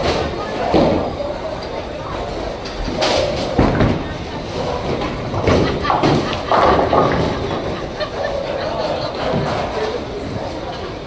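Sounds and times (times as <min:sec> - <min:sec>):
bowling pins clattering: 0:00.0 - 0:11.0
people's voices: 0:00.0 - 0:11.0.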